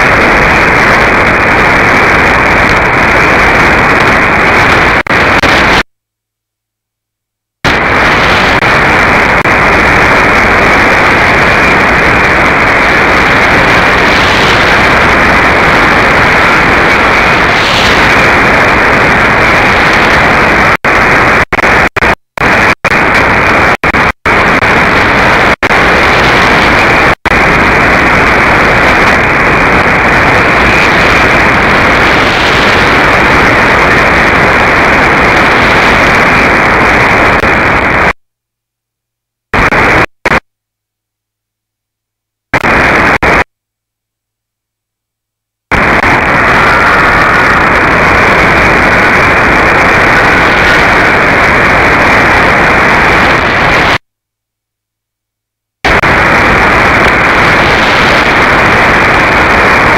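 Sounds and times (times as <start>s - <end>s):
radio static and hiss: 0.0s - 6.0s, 7.5s - 38.2s, 39.4s - 40.5s, 42.4s - 43.6s, 45.6s - 54.0s, 55.8s - 59.9s.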